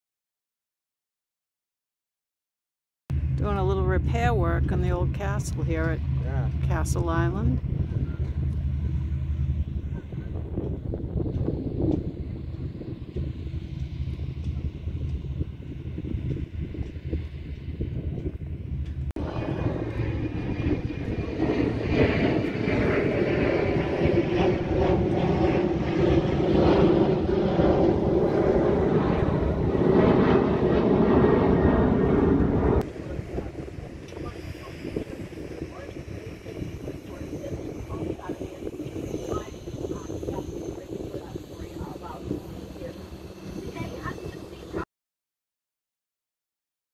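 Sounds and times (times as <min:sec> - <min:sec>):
engine drone: 0:03.1 - 0:44.8
rumbling engine: 0:03.1 - 0:44.8.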